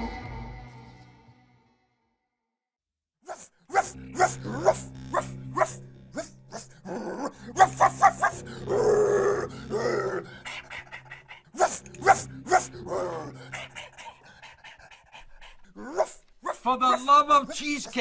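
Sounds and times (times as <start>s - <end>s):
dog growling: 3.3s - 18.0s.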